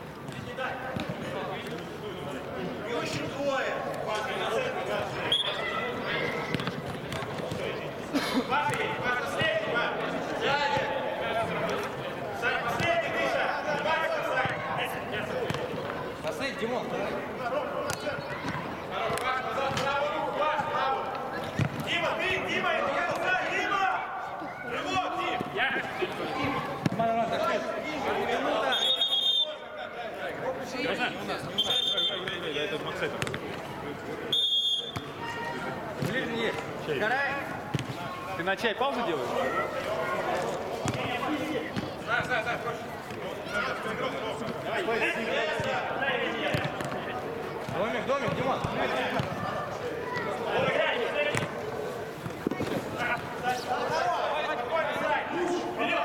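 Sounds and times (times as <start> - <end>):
players shouting: 3.0 - 7.9, 8.5 - 32.7, 34.3 - 51.9, 52.5 - 56.0
referee's whistle blasts: 5.2 - 5.7, 28.6 - 29.6, 31.5 - 32.3, 34.3 - 35.1.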